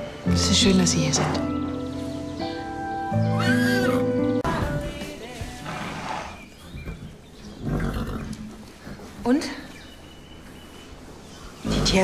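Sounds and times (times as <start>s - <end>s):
horse snorting: 5.6s - 6.5s, 7.6s - 9.0s, 11.6s - 12.0s.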